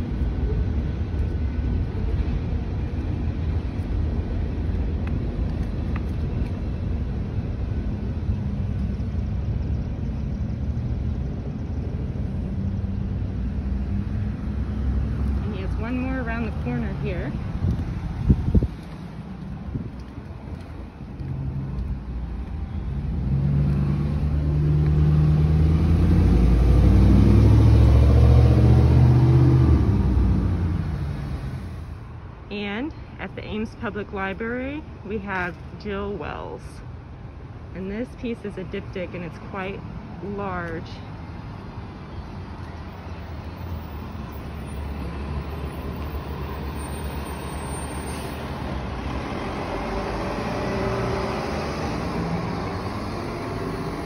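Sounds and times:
road vehicle engine: 0.0s - 54.0s.

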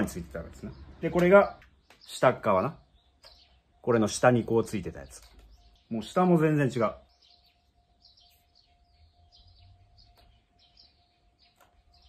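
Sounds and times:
faint bird chirps: 0.0s - 12.0s.

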